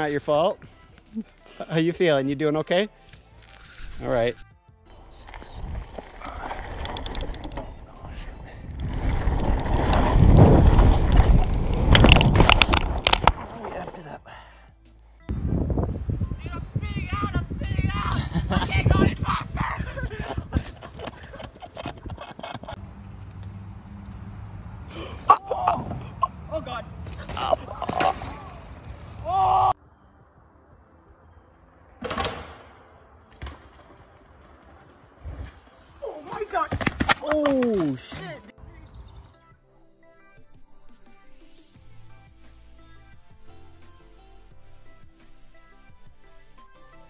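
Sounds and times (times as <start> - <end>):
bike tyres rumbling on dirt: 4.9 - 14.0
person shouting: 17.0 - 20.0
person exclaiming: 17.6 - 20.2
bike crash knocks and clatter: 36.7 - 38.2.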